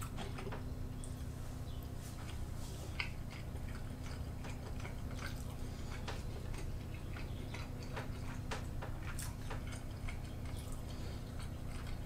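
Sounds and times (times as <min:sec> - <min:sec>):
chewing: 0:00.0 - 0:12.0
steady low hum: 0:00.0 - 0:12.0.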